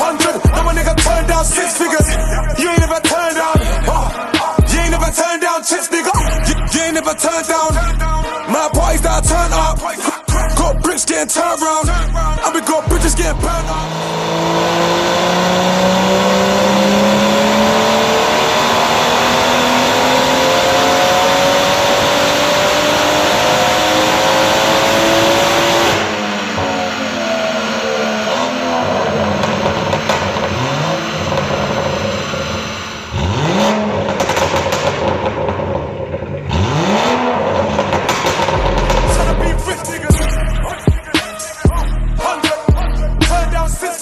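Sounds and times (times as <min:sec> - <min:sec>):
engine blips: 0:06.2 - 0:43.8
car engine revving under load: 0:11.9 - 0:40.8
exhaust pops and crackles: 0:29.2 - 0:32.4, 0:34.0 - 0:36.5, 0:37.7 - 0:40.2.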